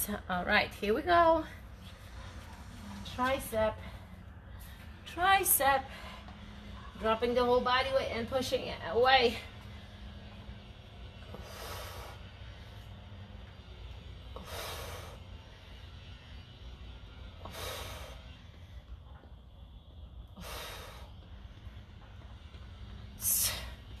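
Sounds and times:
woman's hissing breaths: 0:14.3 - 0:15.8, 0:17.4 - 0:18.4, 0:20.3 - 0:21.5, 0:23.1 - 0:24.0.

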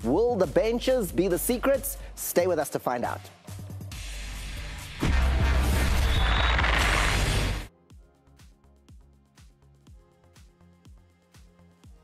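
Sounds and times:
deep booming bass: 0:04.8 - 0:06.5.

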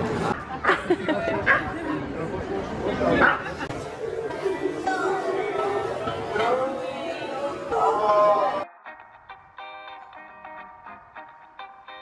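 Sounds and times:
indistinct chatter: 0:00.0 - 0:08.7.

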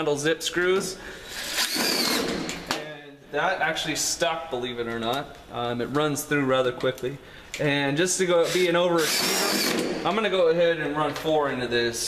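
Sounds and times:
impact driver whining: 0:01.3 - 0:02.8, 0:08.4 - 0:10.1.

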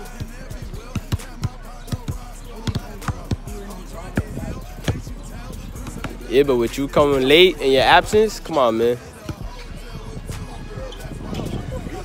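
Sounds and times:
faint music: 0:00.0 - 0:12.0
voices: 0:00.0 - 0:12.0
basketball bouncing on asphalt: 0:00.2 - 0:06.3, 0:09.1 - 0:09.6.

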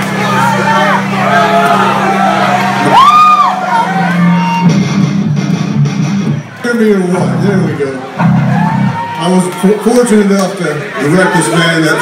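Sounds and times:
low guitar riff: 0:03.6 - 0:09.0.

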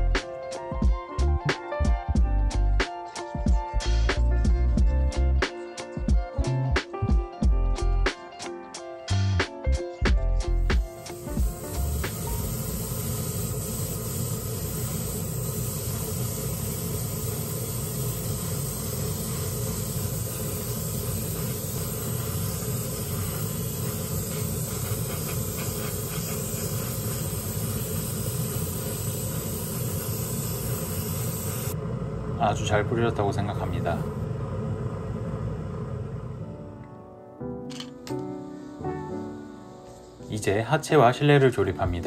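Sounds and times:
airbrush spraying hiss: 0:00.0 - 0:07.1, 0:09.1 - 0:34.2, 0:38.2 - 0:40.4.

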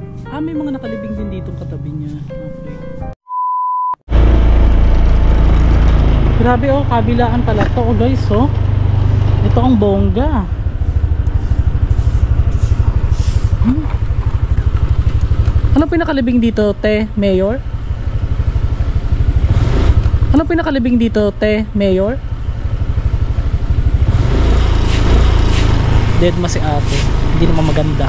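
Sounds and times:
low engine rumble pulsing: 0:04.1 - 0:28.0.

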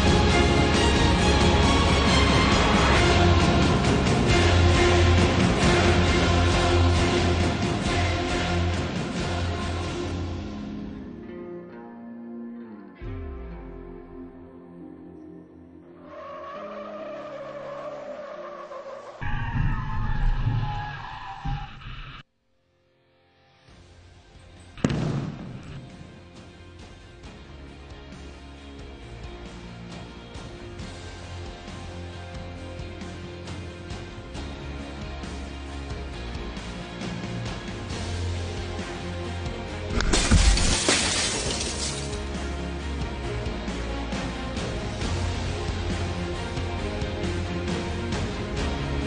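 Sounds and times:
tires squealing: 0:16.0 - 0:22.2
car window glass shattering: 0:40.0 - 0:42.2.

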